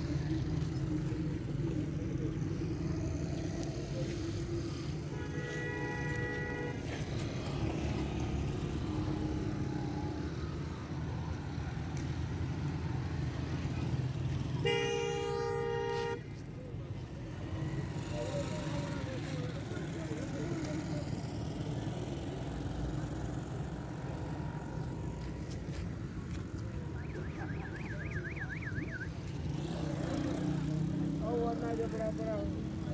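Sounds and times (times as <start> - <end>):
low engine rumble of traffic: 0.0 - 32.9
vehicle horn: 5.1 - 7.0, 14.6 - 16.3.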